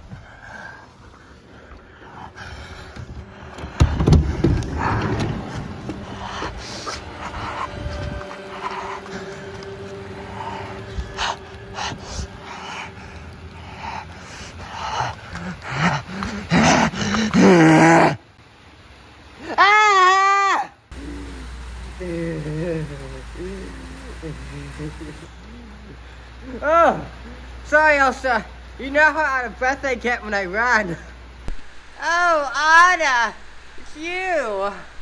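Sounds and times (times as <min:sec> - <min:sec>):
person breathing heavily: 0:00.0 - 0:17.6
person crying out: 0:15.5 - 0:18.2, 0:19.4 - 0:21.2.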